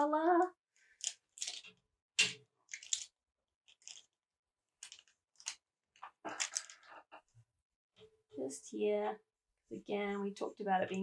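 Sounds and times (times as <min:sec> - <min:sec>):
pencils clicking and rustling: 0:00.9 - 0:04.2, 0:04.8 - 0:07.0.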